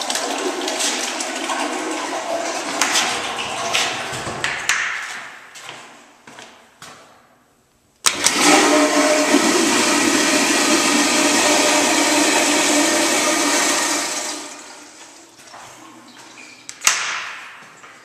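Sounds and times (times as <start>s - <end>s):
toilet flushing: 0.0s - 4.8s, 8.1s - 16.6s.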